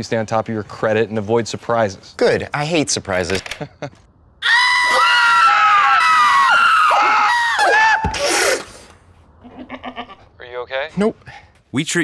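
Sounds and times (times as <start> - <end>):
man screaming: 4.4 - 8.4
goat screaming: 4.4 - 8.5.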